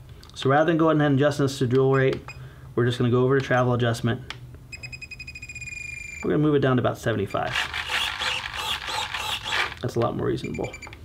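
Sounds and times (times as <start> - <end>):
short high electronic beeps: 10.4 - 11.0.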